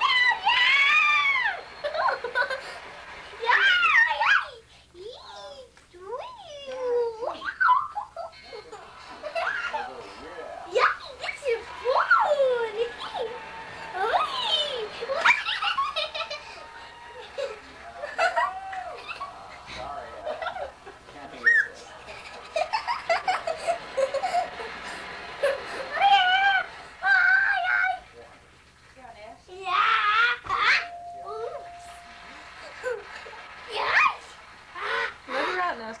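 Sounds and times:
girl giggling and squealing: 0:07.0 - 0:08.6.

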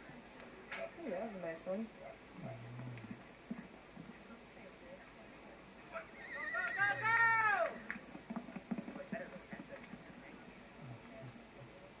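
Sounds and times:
horse whinnying through speaker: 0:06.0 - 0:07.4.

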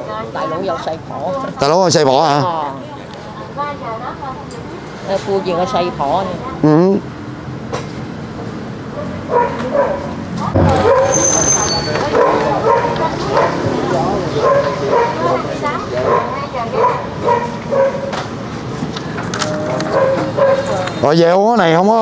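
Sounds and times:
voices: 0:00.0 - 0:07.2, 0:08.9 - 0:22.0
small dog barking and yipping: 0:09.0 - 0:13.6, 0:14.3 - 0:15.4, 0:16.0 - 0:18.1, 0:19.9 - 0:20.8.

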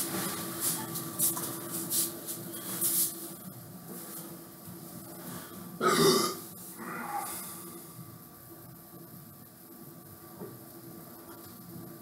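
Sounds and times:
man burping: 0:05.8 - 0:07.4.

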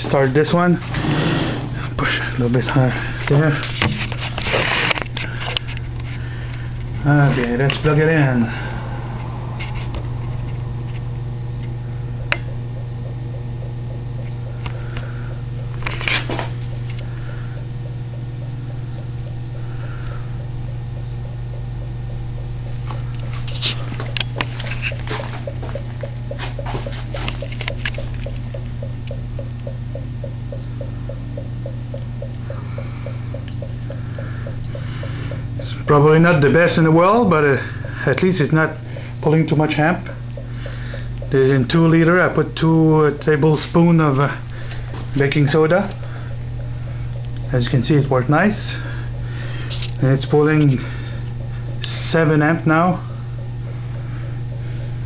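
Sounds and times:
low electrical hum: 0:00.0 - 0:55.0
sharp clicks and taps: 0:22.4 - 0:35.9, 0:39.2 - 0:42.1.

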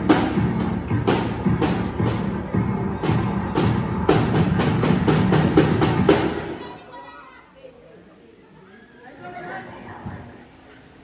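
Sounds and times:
dance music with fast drumbeats: 0:00.0 - 0:06.5
faint voices: 0:00.9 - 0:11.0.

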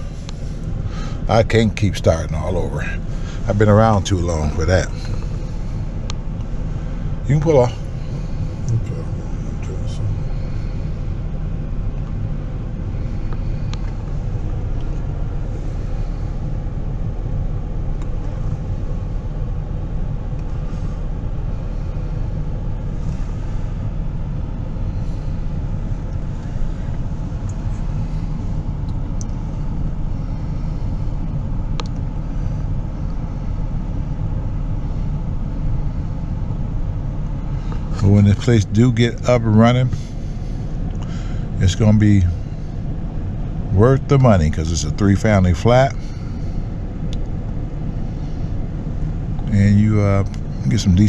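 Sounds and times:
car engine rumbling: 0:00.0 - 0:51.0.

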